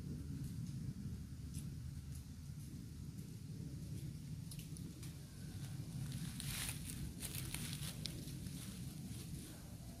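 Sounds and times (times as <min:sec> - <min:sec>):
low steady rumble: 0:00.0 - 0:10.0
footsteps in dry leaves: 0:05.5 - 0:09.7.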